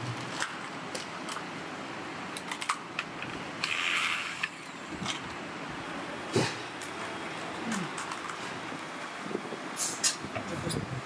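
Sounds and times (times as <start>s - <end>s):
steady background noise: 0.0s - 11.0s
plastic parts clicking: 2.3s - 5.3s.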